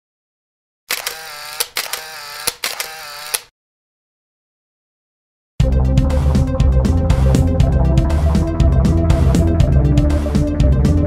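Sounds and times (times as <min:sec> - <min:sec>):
camera shutter clicks: 0:00.9 - 0:03.5.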